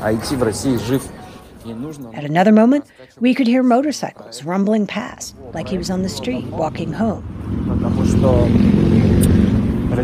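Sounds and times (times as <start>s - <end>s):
motorcycles rumbling past: 5.6s - 10.0s.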